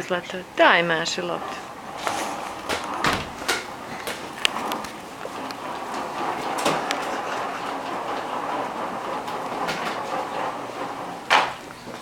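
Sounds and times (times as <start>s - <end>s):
plastic wheels rolling on wood floor: 0.0s - 12.0s.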